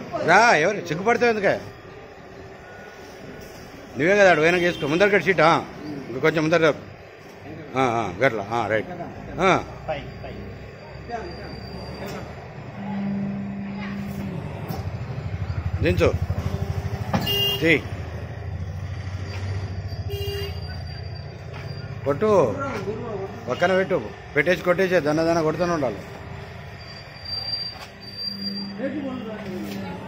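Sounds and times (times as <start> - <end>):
machine high-pitched squeal: 10.0 - 17.0, 18.5 - 22.6, 25.9 - 29.8.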